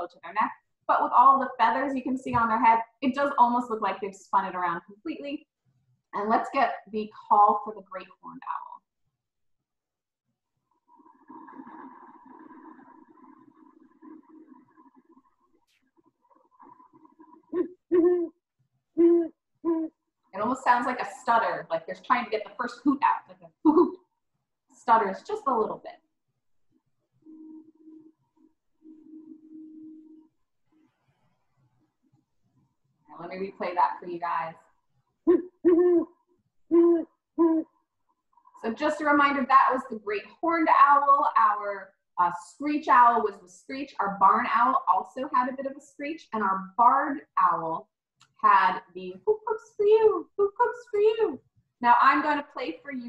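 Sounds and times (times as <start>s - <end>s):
owl hooting: 16.3s - 18.3s, 35.3s - 36.1s, 36.7s - 37.6s.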